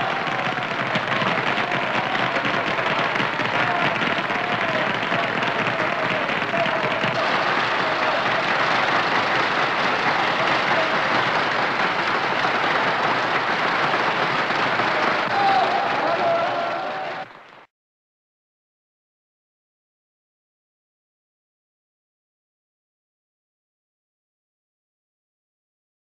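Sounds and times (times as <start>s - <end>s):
audience applauding: 0.0s - 17.7s.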